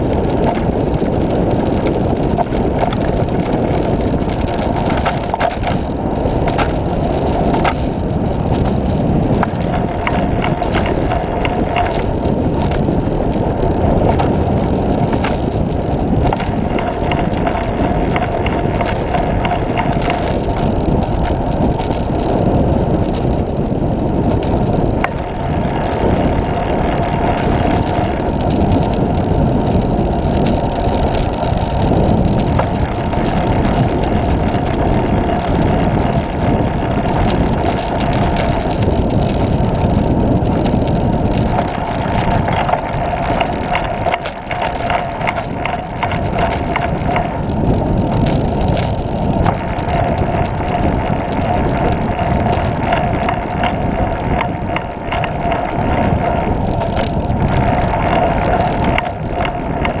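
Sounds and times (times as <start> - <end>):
tyre noise on road: 0.0 - 60.0
wind on microphone: 0.0 - 60.0.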